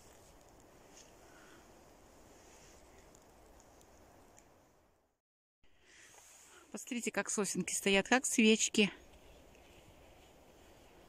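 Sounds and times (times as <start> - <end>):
outdoor background hiss: 0.0 - 11.0
tiny ticks: 0.3 - 0.7.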